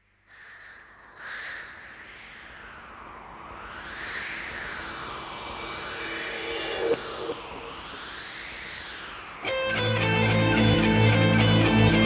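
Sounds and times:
low hum: 0:01.8 - 0:11.3
harsh sustained tone: 0:04.3 - 0:12.0.

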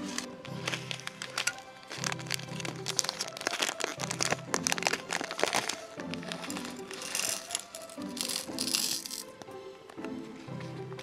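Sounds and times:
beads rattling into plastic tray: 0:00.0 - 0:09.3
background music: 0:00.0 - 0:11.0.

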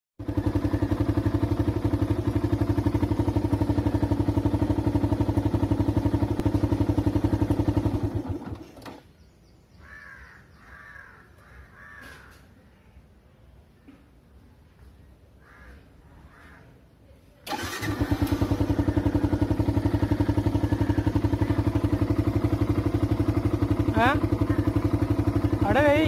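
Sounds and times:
motorcycle engine idling: 0:00.2 - 0:09.0, 0:17.5 - 0:26.0
crow cawing: 0:09.8 - 0:12.6, 0:15.4 - 0:16.8.

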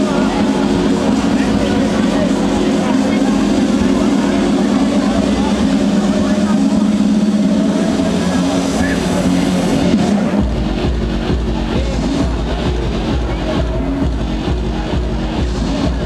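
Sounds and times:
crowd shouting and cheering: 0:00.0 - 0:16.0.

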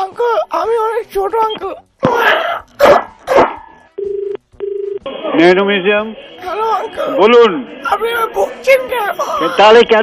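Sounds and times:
telephone ring-back tone: 0:04.0 - 0:05.0.

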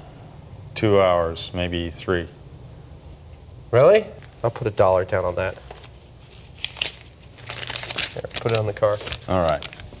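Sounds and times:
paper bill crinkling: 0:05.6 - 0:10.0.

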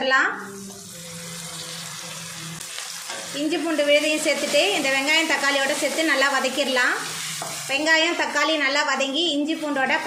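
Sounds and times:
vegetables sizzling in hot oil: 0:00.4 - 0:10.0.

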